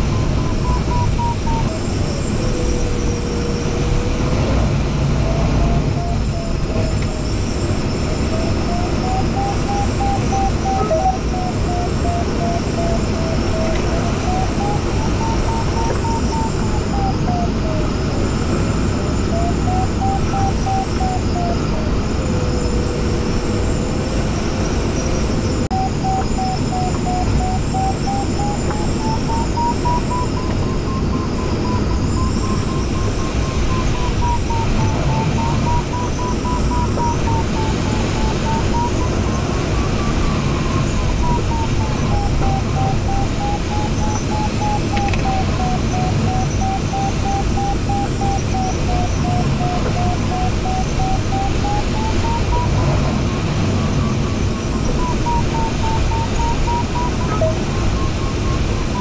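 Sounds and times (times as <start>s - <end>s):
airflow noise around cockpit: 0.0s - 59.0s
variometer tone wavering in pitch: 0.0s - 59.0s.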